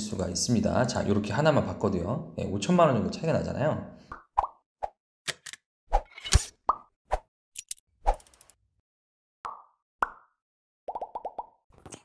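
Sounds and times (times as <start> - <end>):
cartoon pops and plops: 9.4 - 12.0.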